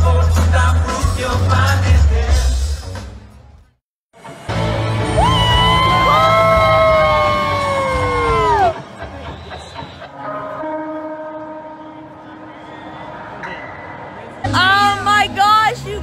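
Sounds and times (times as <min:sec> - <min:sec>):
crowd noise: 0:00.0 - 0:16.0
live concert music: 0:00.0 - 0:16.0
concert-goers cheering: 0:04.9 - 0:09.9.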